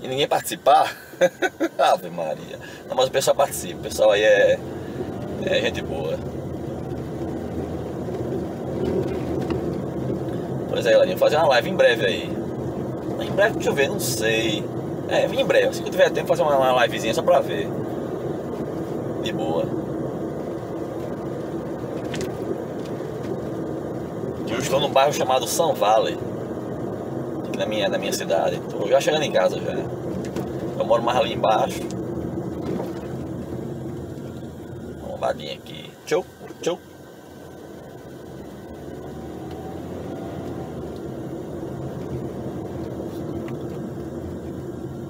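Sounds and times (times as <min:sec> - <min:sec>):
car engine and tyre drone: 0:00.0 - 0:45.0.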